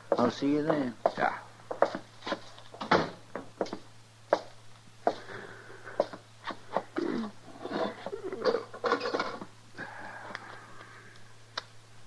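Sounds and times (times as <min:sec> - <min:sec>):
boots on wooden boards: 0:00.1 - 0:05.3.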